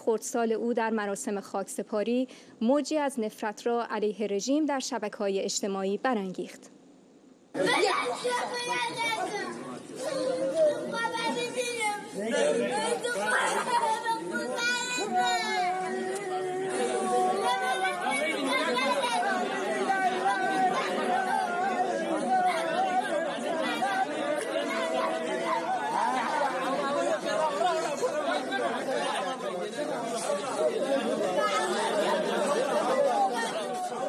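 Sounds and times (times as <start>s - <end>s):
murmur of adult voices: 7.5s - 34.0s.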